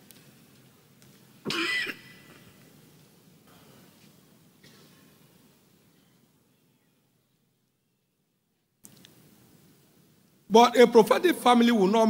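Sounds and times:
man coughing: 1.5s - 2.4s.

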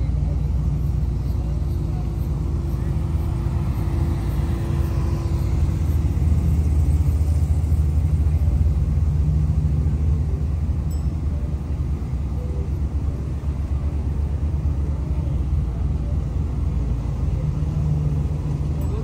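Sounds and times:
vehicle engine and tyres rumbling: 0.0s - 19.0s.

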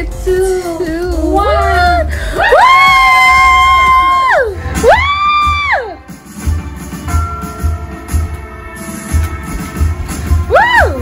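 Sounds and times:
people whooping: 1.6s - 6.0s, 10.5s - 11.0s.

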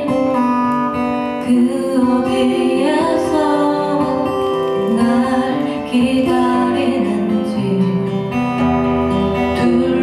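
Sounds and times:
woman singing a slow ballad: 0.0s - 8.4s, 9.5s - 10.0s
acoustic guitar: 0.0s - 10.0s.

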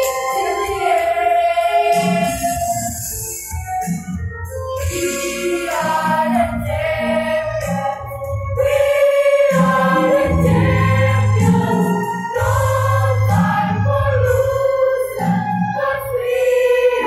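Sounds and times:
mixed choir singing: 0.0s - 2.9s, 4.8s - 17.0s.

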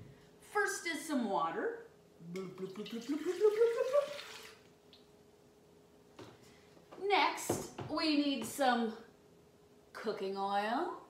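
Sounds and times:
water pouring from a jug: 2.6s - 4.7s.

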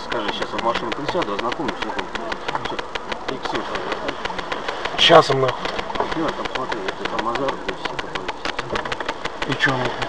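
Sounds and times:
fast even ticking: 0.0s - 10.0s
low voices talking: 0.0s - 10.0s.

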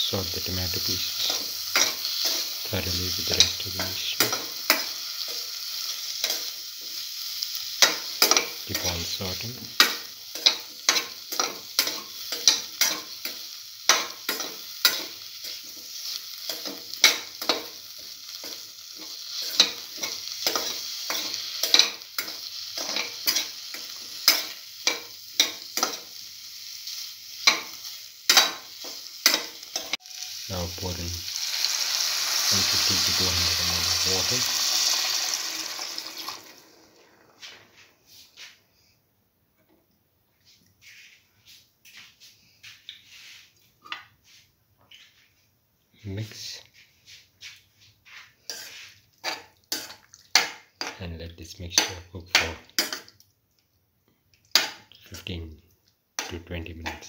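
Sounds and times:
loud steady hiss: 0.0s - 5.5s, 29.7s - 34.8s
food frying sizzle: 0.0s - 38.4s, 47.4s - 57.0s
spatula scraping a pan: 18.4s - 26.1s, 47.1s - 51.0s.

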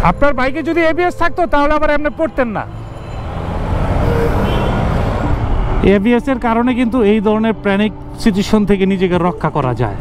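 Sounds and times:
road noise: 0.0s - 10.0s
motorcycle engine: 2.6s - 6.0s.

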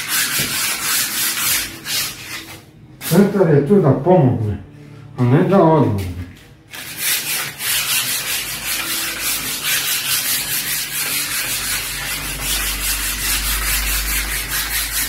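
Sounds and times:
sandpaper rubbing on wood: 0.0s - 3.3s, 6.7s - 15.0s.

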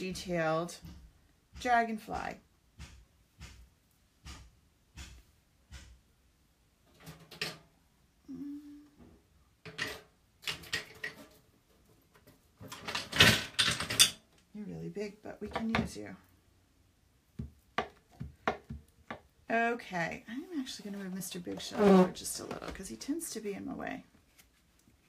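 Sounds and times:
clattering and rustling: 6.8s - 7.8s, 9.6s - 14.4s.

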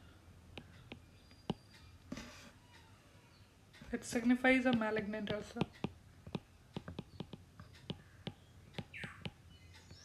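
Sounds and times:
stylus tapping on tablet screen: 0.5s - 2.9s, 3.7s - 10.0s.

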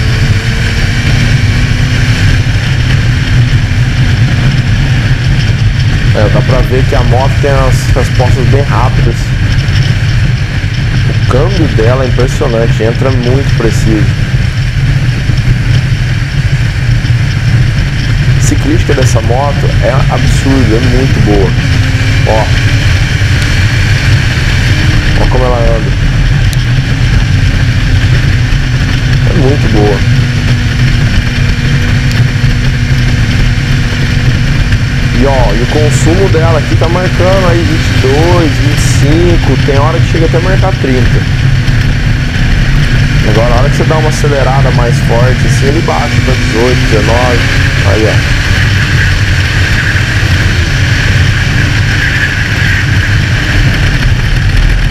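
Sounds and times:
motorcycle engine cruising: 0.0s - 54.9s
wind and road noise: 0.0s - 54.9s.

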